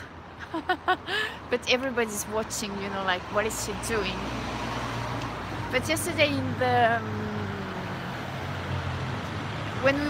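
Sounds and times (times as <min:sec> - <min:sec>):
vehicle engine humming: 0:00.0 - 0:10.0
woman speaking: 0:01.5 - 0:04.3, 0:05.7 - 0:07.6, 0:09.8 - 0:10.0.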